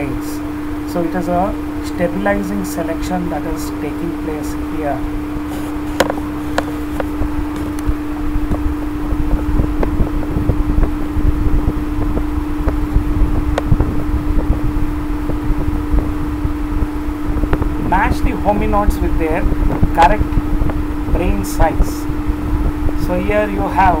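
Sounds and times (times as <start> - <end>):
mechanical hum: 0.0 - 24.0.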